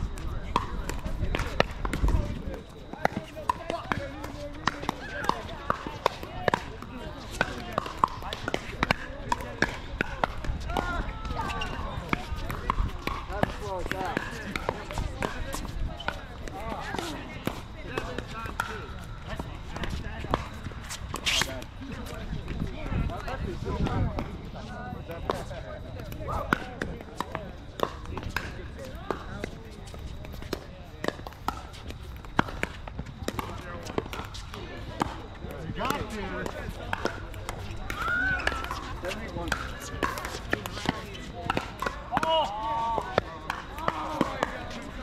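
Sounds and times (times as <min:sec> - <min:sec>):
chatter of players' voices: 0:00.0 - 0:45.0.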